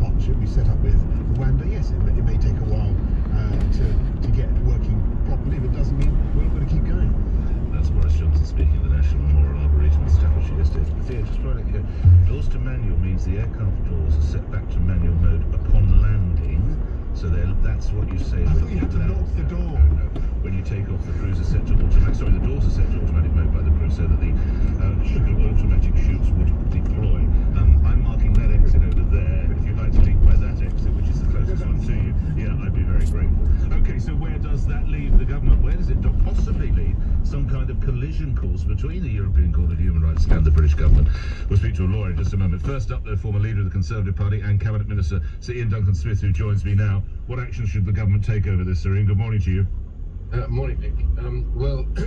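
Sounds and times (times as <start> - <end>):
car cabin road rumble: 0.0 - 52.0.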